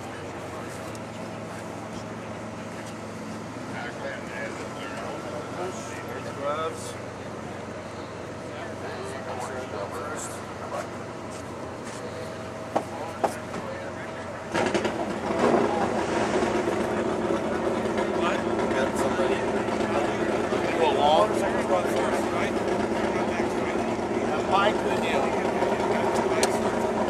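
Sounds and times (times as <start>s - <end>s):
background voices talking: 0.0s - 27.0s
engine starting and running: 11.9s - 27.0s.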